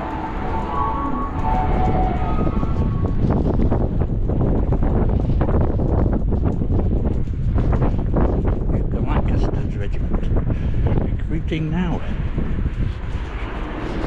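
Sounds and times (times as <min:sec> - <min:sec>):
faint steady tones: 0:00.0 - 0:05.6
wind buffeting microphone: 0:00.0 - 0:14.0.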